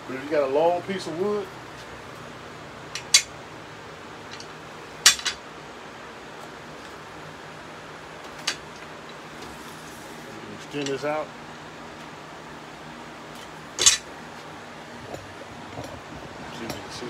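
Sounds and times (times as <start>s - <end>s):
metal clicks and clanks: 2.9s - 3.3s, 4.3s - 5.4s, 13.8s - 14.1s.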